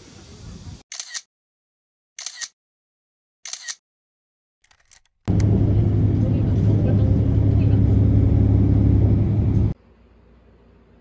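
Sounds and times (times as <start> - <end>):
loud low rumble with hum: 5.3 - 9.8.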